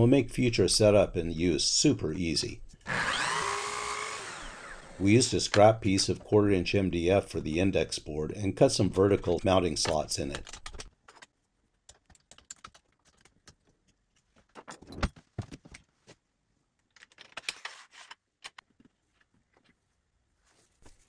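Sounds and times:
clicks and rattles of jig parts: 9.8s - 15.9s, 16.8s - 18.9s.

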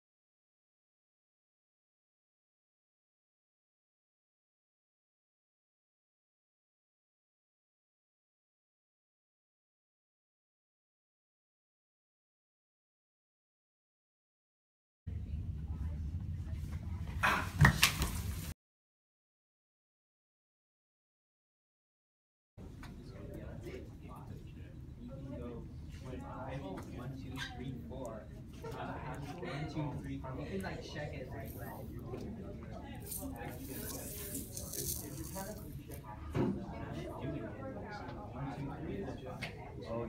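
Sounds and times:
hallway background noise: 15.1s - 17.6s
background voices talking: 22.6s - 40.0s.

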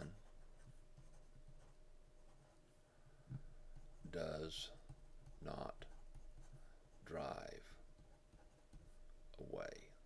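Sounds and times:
stylus scratching on tablet screen: 0.0s - 2.7s, 3.7s - 9.8s.

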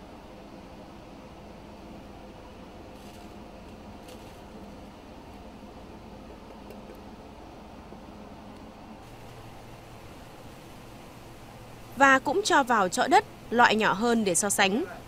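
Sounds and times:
faint hum and hiss: 0.0s - 15.0s.

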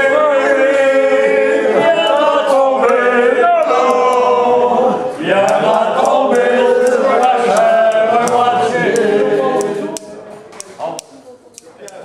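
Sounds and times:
group singing a cappella: 0.0s - 10.6s
quiet voices: 0.0s - 12.0s.

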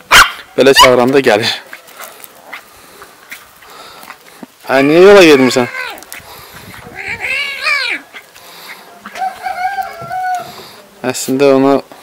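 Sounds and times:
kitten crying: 4.7s - 6.0s.

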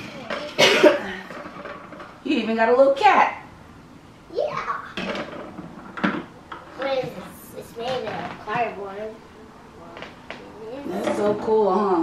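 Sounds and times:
person coughing: 0.6s - 1.2s.

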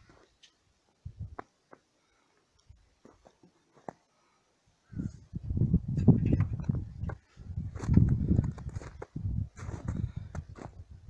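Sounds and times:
wind on microphone: 1.0s - 1.4s, 4.9s - 11.0s
footsteps crunching in snow: 3.0s - 4.1s, 7.0s - 10.8s.

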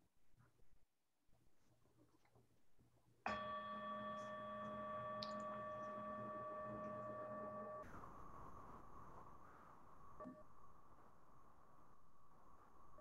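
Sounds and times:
meditation bell ringing: 3.3s - 7.8s.

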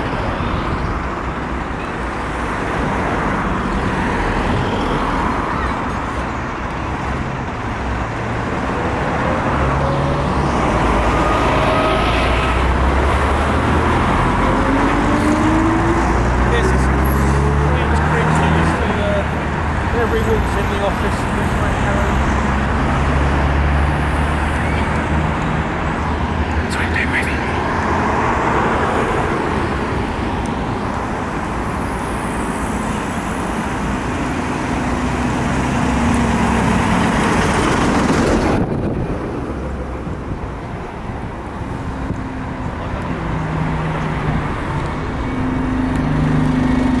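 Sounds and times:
street traffic: 0.0s - 47.0s
bus diesel engine: 4.8s - 47.0s.

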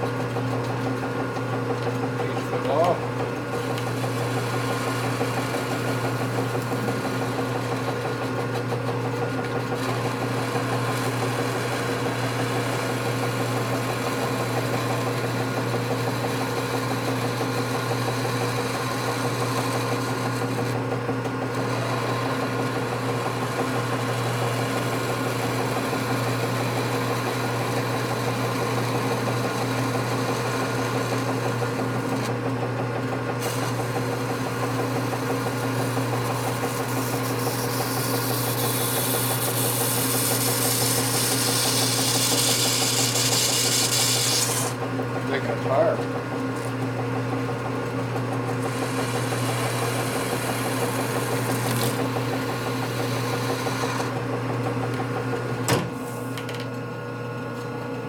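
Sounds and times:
lathe motor hum: 0.0s - 58.0s
lathe cutting hiss: 36.3s - 44.8s, 48.7s - 54.2s.

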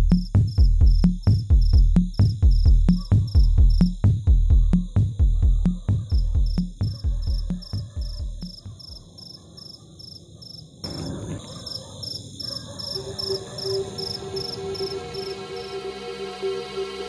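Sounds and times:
electronic music bass beat: 0.0s - 8.6s
cricket chirps: 0.1s - 15.9s.

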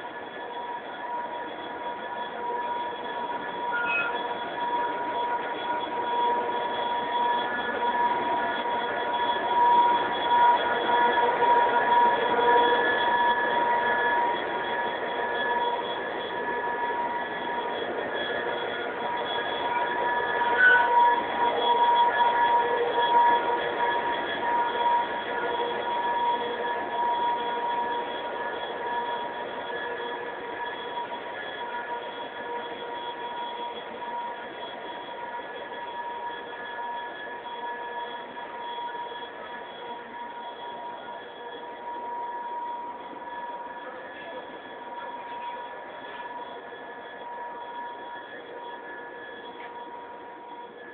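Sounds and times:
diesel locomotive running: 0.0s - 50.9s
steady high whine: 0.0s - 50.9s.

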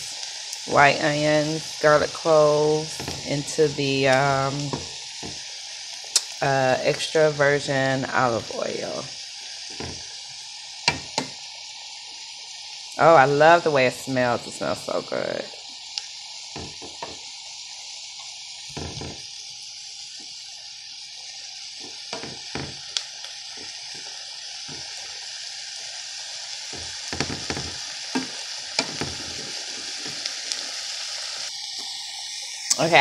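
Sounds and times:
vegetables sizzling in oil: 0.0s - 33.0s.

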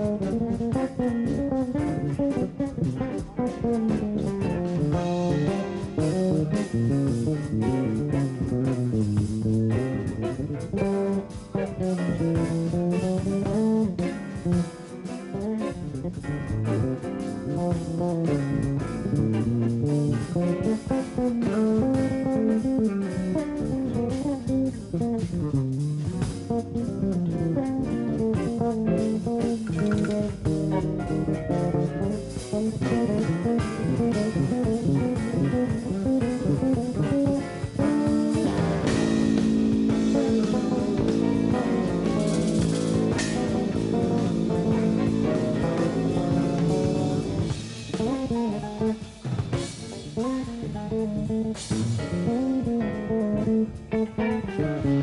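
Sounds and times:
drums: 0.0s - 55.0s
electric bass guitar solo: 0.0s - 55.0s.

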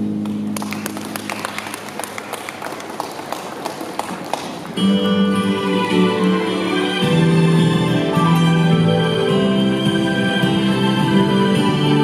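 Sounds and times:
audience applause: 0.2s - 4.8s.

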